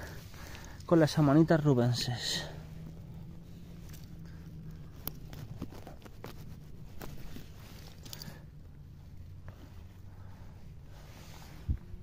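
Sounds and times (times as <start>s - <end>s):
pine needles and twigs crackling: 0.0s - 8.5s.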